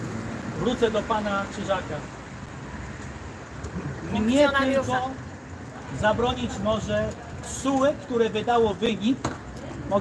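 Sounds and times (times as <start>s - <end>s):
street background rumble: 0.0s - 10.0s.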